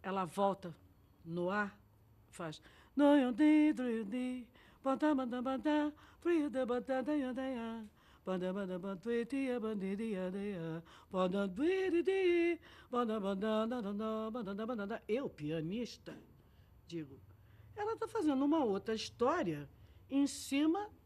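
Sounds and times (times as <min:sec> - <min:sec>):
woman singing unaccompanied: 0:00.0 - 0:16.3, 0:16.9 - 0:21.0.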